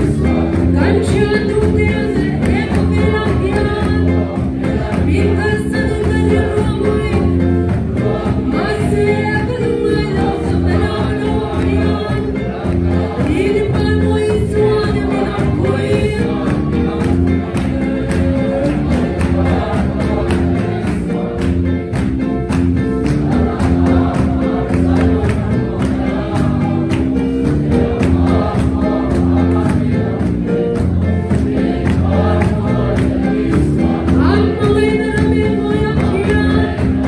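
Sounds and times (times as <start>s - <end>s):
congregation singing a hymn: 0.0s - 37.0s
musical accompaniment: 0.0s - 37.0s.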